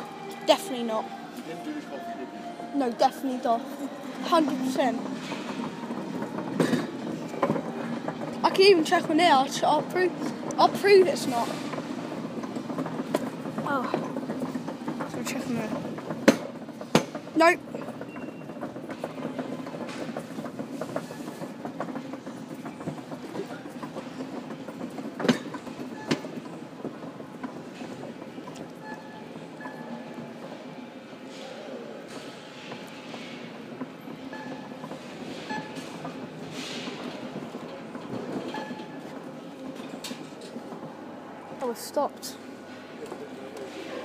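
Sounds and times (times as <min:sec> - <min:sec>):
shopping trolley wheels rattling: 0:02.8 - 0:44.0.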